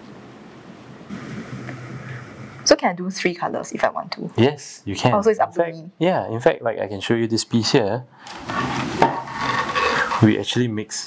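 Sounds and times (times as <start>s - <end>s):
object scraping across tabletop: 8.3s - 10.4s.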